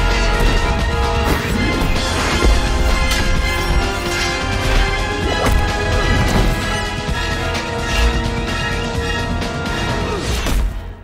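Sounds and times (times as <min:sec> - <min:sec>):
orchestral film score: 0:00.0 - 0:11.0.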